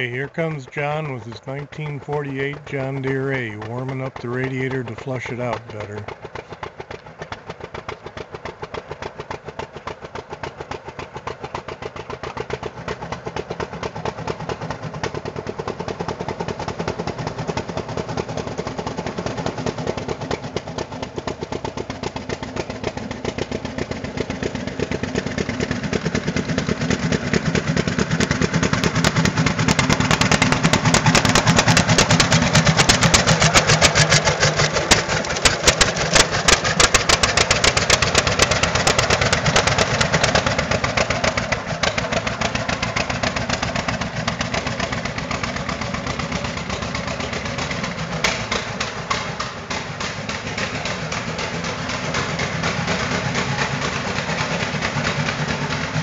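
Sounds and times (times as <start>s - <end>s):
tractor engine exhaust beats: 0.0s - 56.0s.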